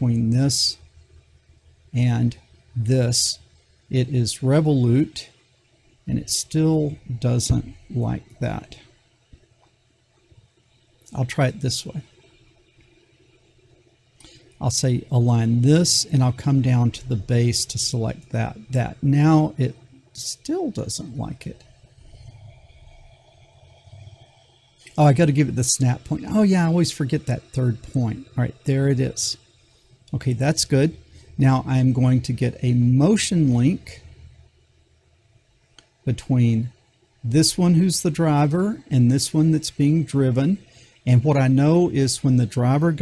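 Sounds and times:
weak low hum: 0.0 - 43.0.

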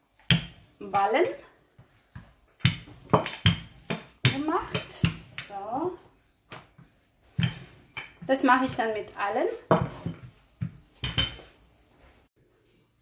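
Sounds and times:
woman talking: 0.8 - 1.5, 4.3 - 6.1, 8.2 - 9.7
rolling pin knocking on worktop: 2.6 - 5.5, 9.7 - 11.5.

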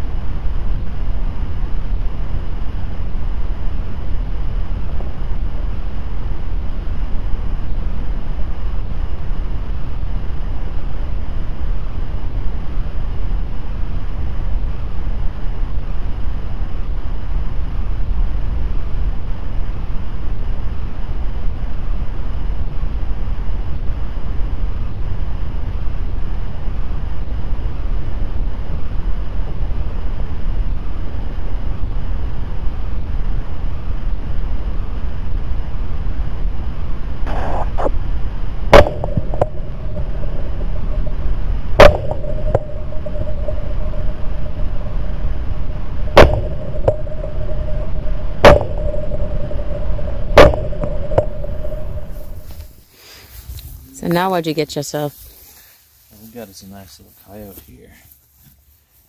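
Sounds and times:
wind buffeting microphone: 24.4 - 52.8
steady high tone: 37.3 - 52.8
sharp loud cracks: 38.7 - 52.8.

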